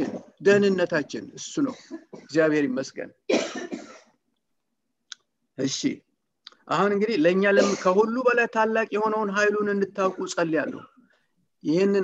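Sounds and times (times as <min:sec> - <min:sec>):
man coughing: 0:01.6 - 0:02.4, 0:03.3 - 0:04.2, 0:07.6 - 0:08.0.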